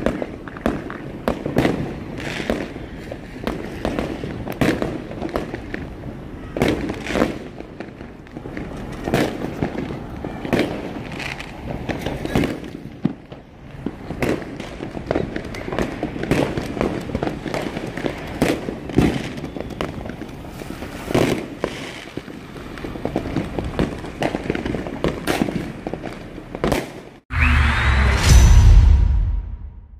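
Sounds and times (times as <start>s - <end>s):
firework pops and crackles: 0.0s - 27.2s
loud firework bangs: 0.0s - 29.8s.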